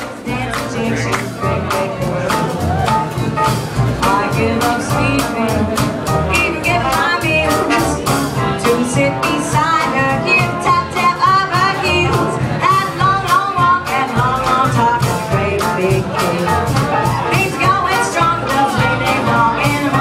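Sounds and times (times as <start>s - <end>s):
double bass: 0.0s - 20.0s
drums: 0.0s - 20.0s
jazz band playing: 0.0s - 20.0s.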